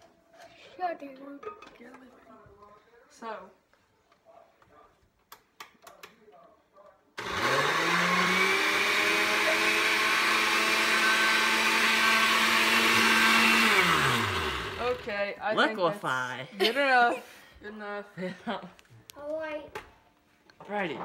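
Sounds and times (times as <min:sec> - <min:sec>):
blender motor running: 0:07.2 - 0:15.2.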